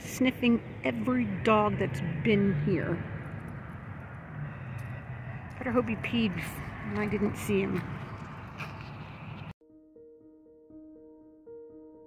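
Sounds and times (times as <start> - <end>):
vehicle traffic hum: 0.0 - 9.6.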